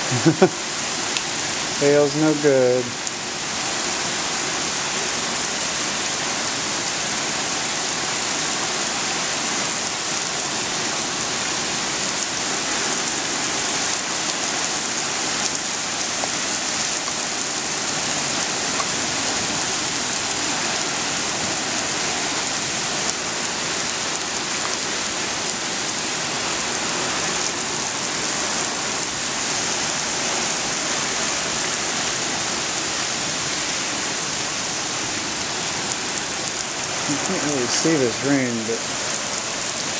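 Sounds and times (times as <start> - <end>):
heavy rain falling: 0.0 - 39.9.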